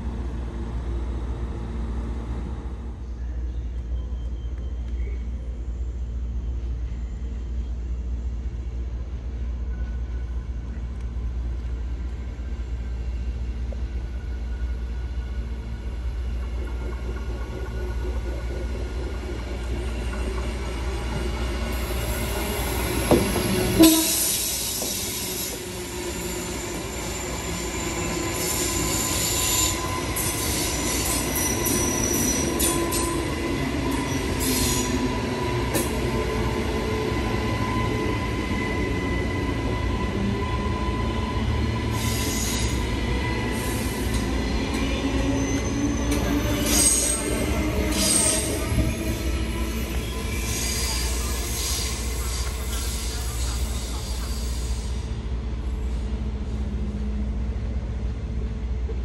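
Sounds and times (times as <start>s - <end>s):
train wheel squeal: 3.0s - 5.6s, 9.6s - 10.9s, 12.2s - 55.2s
electric train passing: 9.7s - 58.9s.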